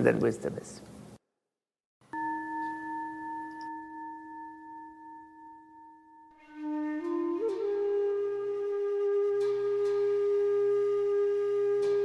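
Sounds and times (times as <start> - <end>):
bell ringing: 2.1 - 6.4.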